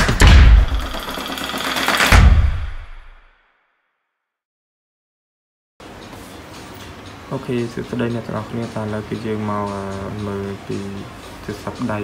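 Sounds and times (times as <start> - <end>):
sharp cinematic hit: 0.0 - 1.0.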